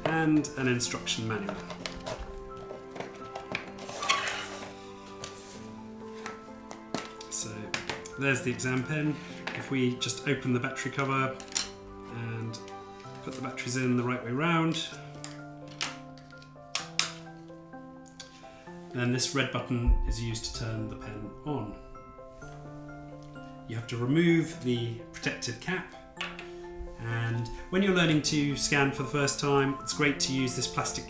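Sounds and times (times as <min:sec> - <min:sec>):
packaging rustling: 0:00.0 - 0:08.1
soft background music: 0:00.0 - 0:31.0.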